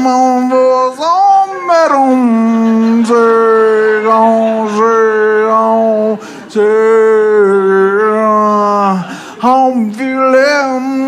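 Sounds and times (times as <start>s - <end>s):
man singing a long held note: 0.0s - 11.0s.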